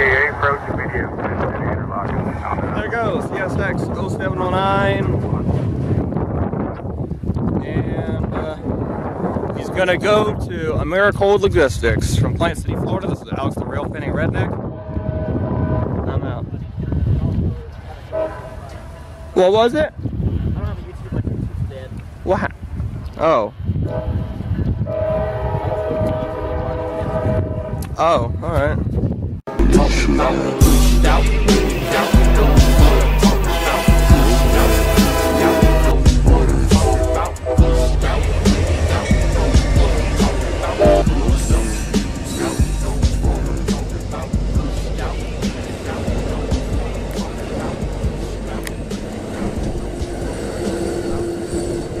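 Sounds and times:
low rumble: 0.0s - 10.7s, 29.4s - 52.0s
locomotive air horn chord: 14.7s - 16.0s, 18.1s - 19.4s, 24.9s - 27.8s, 29.5s - 52.0s
music playing: 29.5s - 52.0s
train coaches rolling past: 29.5s - 52.0s.

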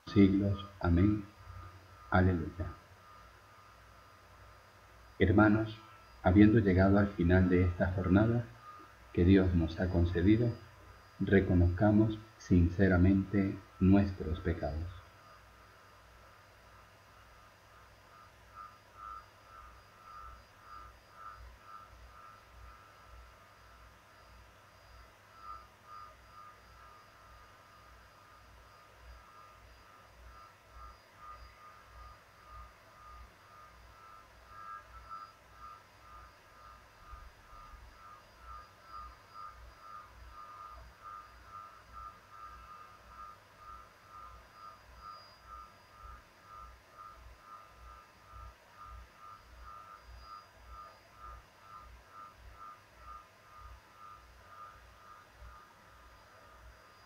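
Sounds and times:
faint electronic beeping: 0.0s - 57.0s
low pulse: 0.0s - 57.0s.

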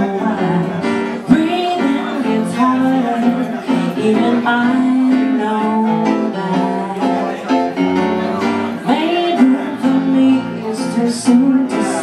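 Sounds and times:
woman singing: 0.0s - 7.4s, 8.8s - 12.0s
instrumental accompaniment: 0.0s - 12.0s.

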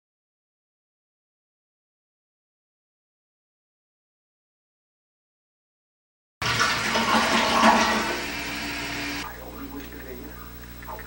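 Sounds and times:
low steady hum: 6.5s - 11.0s.

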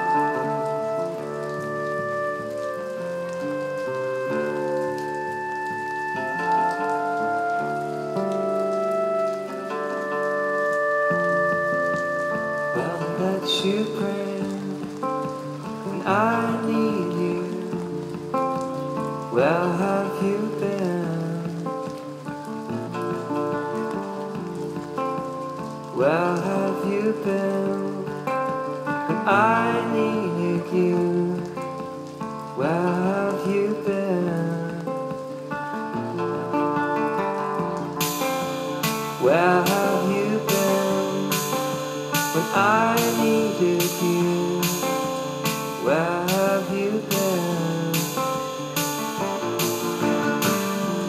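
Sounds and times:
fingerpicked acoustic guitar: 0.0s - 51.0s.

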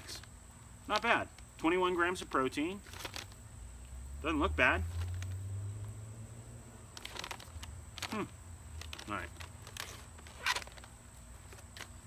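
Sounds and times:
snack pouch crinkling: 2.8s - 3.4s, 4.9s - 5.4s, 6.9s - 12.0s.

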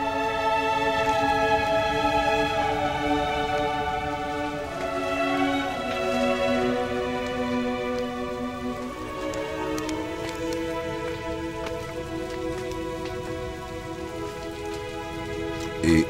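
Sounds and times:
music of long held chords: 0.0s - 16.0s
rain-like hiss with crackles: 0.0s - 16.0s.

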